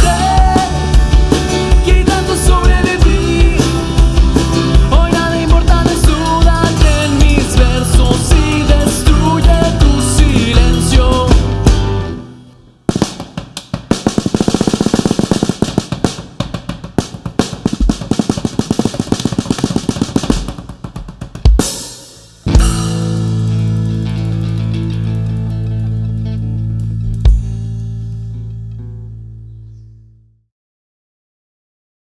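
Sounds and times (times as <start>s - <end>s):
acoustic guitars: 0.0s - 12.6s, 22.5s - 29.0s
bass guitar: 0.0s - 12.6s, 22.3s - 30.4s
snare and tom rolls: 12.9s - 22.8s.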